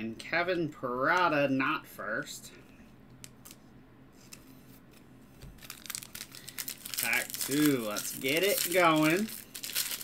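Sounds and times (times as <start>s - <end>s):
foil wrapper crinkling and tearing: 5.5s - 10.0s.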